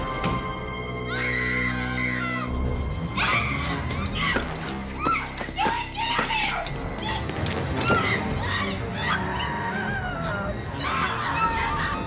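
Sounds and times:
orchestral horror music: 0:00.0 - 0:12.0.

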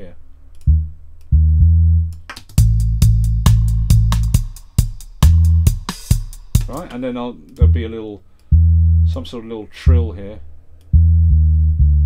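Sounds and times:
synth bassline: 0:00.7 - 0:07.9, 0:08.5 - 0:09.2, 0:10.9 - 0:12.0
drum machine beat: 0:02.2 - 0:07.8.

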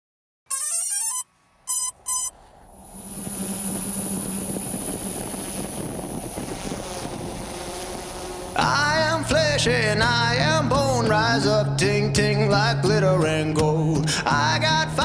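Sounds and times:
rising electronic chime tones: 0:00.5 - 0:02.3
short electronic blips: 0:00.5 - 0:09.0
thin high whine: 0:00.5 - 0:10.8
noisy swell: 0:01.4 - 0:10.7
steady low hum: 0:02.1 - 0:10.5.

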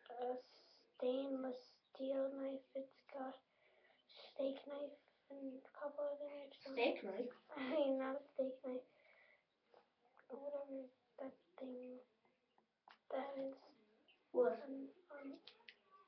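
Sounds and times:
child talking quietly: 0:00.0 - 0:03.4, 0:04.0 - 0:08.9, 0:10.2 - 0:12.1, 0:12.9 - 0:16.0
faint clicks: 0:15.2 - 0:16.0.

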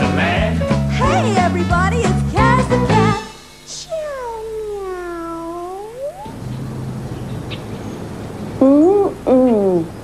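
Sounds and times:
cartoon cat meowing: 0:03.7 - 0:06.3.

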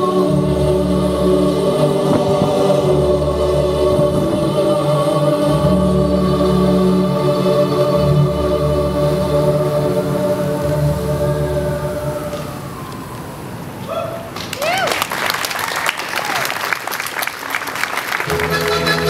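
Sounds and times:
operatic choir music over loudspeaker: 0:00.0 - 0:13.0.

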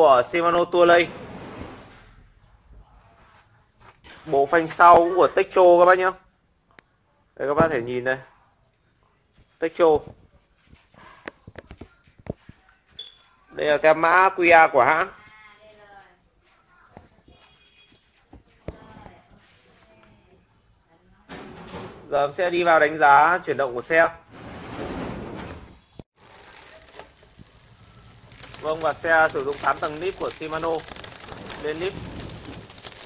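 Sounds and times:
bicycle brake clicks and knocks: 0:26.2 - 0:33.0.

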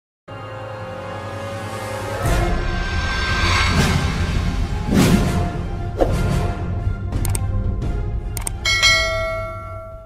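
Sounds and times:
low background music: 0:00.3 - 0:10.0
bell-like notification ding: 0:08.6 - 0:10.0.

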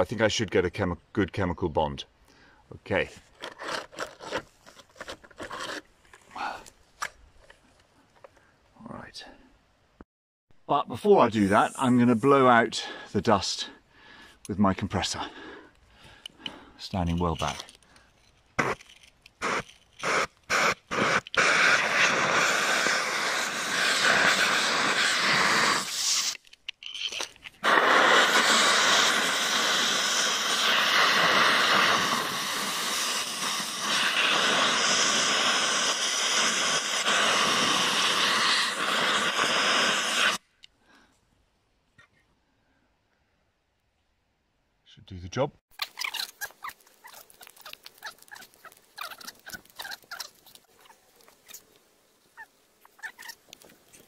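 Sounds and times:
compressed air blow gun hissing: 0:19.4 - 0:26.4, 0:27.6 - 0:40.4.

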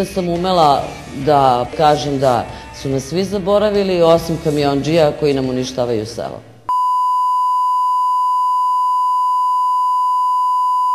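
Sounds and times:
steady pure test tone beep: 0:06.7 - 0:10.9.

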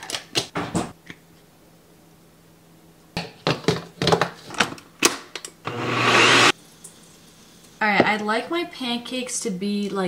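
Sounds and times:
blender motor running: 0:05.6 - 0:06.6.

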